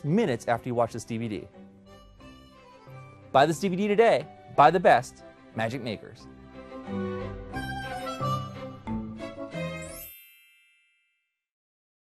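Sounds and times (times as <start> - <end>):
music: 0.0 - 10.6
bright bell-like chime: 9.6 - 11.5.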